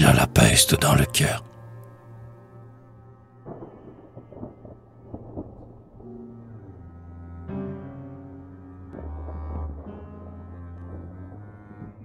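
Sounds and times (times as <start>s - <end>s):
ambient music drone: 0.0s - 12.0s
thunder rumbling and cracking: 3.4s - 6.5s.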